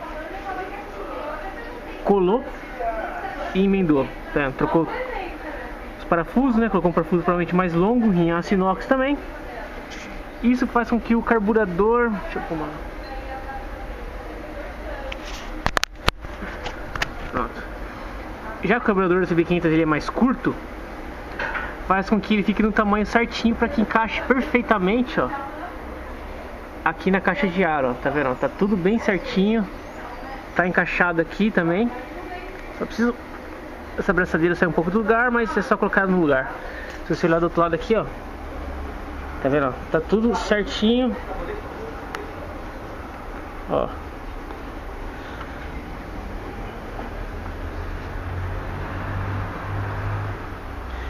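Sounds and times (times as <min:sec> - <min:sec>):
low background hum: 0:00.0 - 0:51.0.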